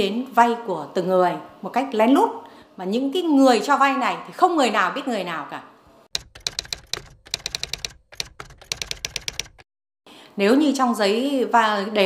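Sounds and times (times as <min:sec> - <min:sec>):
typewriter key clicks: 0:06.2 - 0:09.6.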